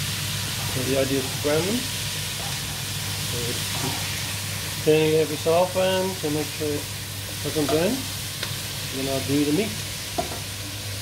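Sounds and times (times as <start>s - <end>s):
onions sizzling in a pot: 0.0s - 11.0s.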